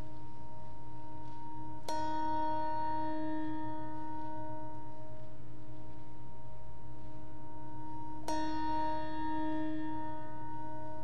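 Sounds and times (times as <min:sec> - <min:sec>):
lingering bell hum: 0:00.0 - 0:11.0.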